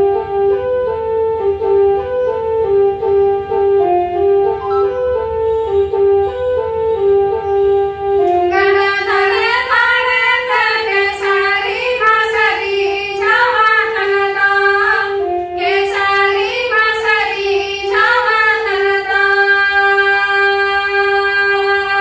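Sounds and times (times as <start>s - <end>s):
instrumental melody line: 0.0s - 19.4s
women singing together: 8.5s - 22.0s.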